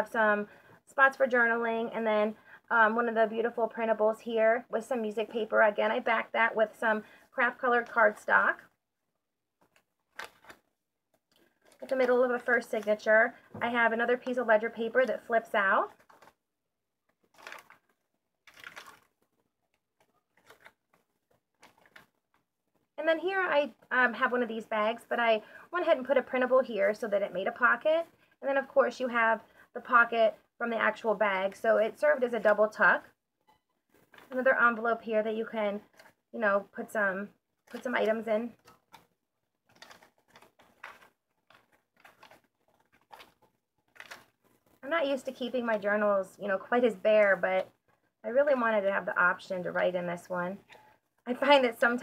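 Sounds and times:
paper pages rustling: 9.6s - 13.1s, 14.1s - 22.9s, 33.9s - 34.4s, 37.6s - 44.8s.

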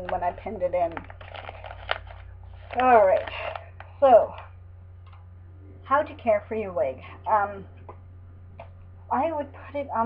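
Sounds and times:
plastic packaging crinkling: 0.0s - 4.4s.

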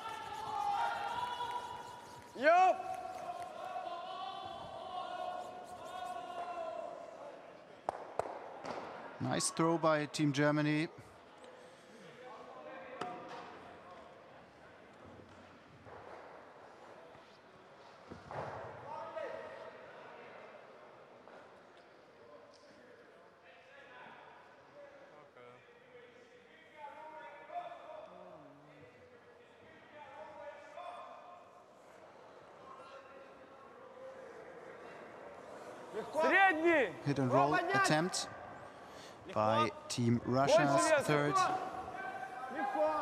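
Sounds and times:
players calling across ice: 0.0s - 7.1s, 39.2s - 43.0s.

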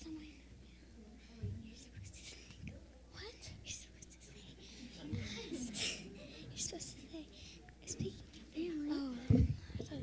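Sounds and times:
children whispering: 0.0s - 10.0s
low steady hum: 0.0s - 10.0s.

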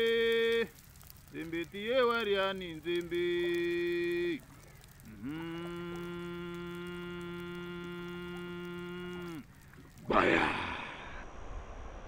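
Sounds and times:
person singing long notes: 5.0s - 9.5s.

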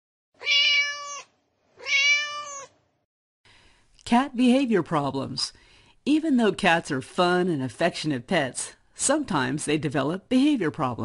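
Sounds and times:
cat meowing: 0.4s - 2.8s.

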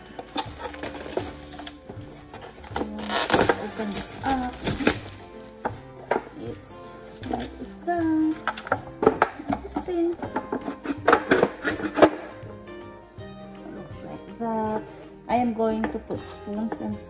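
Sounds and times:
plastic wrapping rustling: 0.0s - 12.2s
background music: 0.0s - 17.0s
wooden organizer knocking and clacking: 8.3s - 12.3s.

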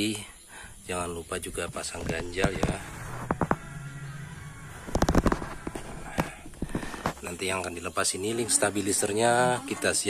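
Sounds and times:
sharp knocks and clicks: 2.0s - 3.7s.

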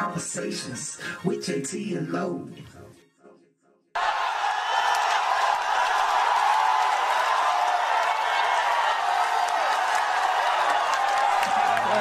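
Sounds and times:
crowd applauding and cheering: 4.0s - 12.0s.

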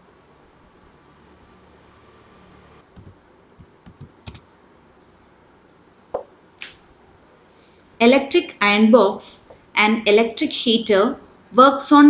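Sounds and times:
computer keyboard keystrokes: 3.0s - 4.4s.

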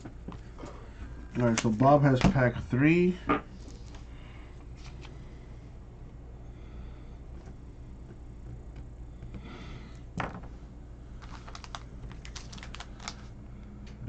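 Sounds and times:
faint background hum: 0.0s - 14.0s.

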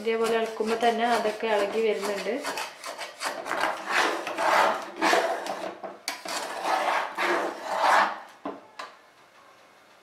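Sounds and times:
metal spatula scraping saucepan: 0.0s - 8.2s.

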